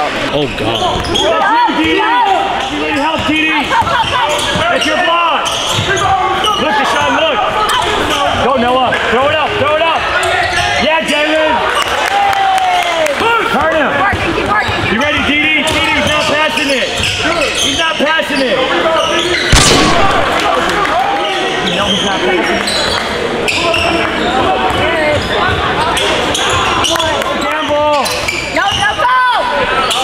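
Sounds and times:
sneakers squeaking: 0:00.4 - 0:08.4, 0:10.1 - 0:10.9, 0:14.0 - 0:20.2, 0:21.1 - 0:30.0
loud bang: 0:19.5 - 0:20.8.

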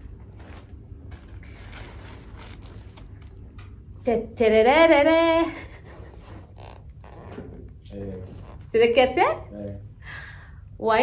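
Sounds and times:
cloth bag rustling: 0:00.0 - 0:03.4.

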